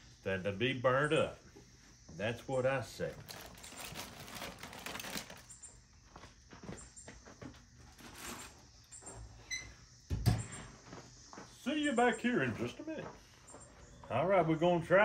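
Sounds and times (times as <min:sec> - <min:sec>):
aluminium foil crinkling: 0:03.1 - 0:05.6
steel lid thudding shut: 0:10.1 - 0:10.6.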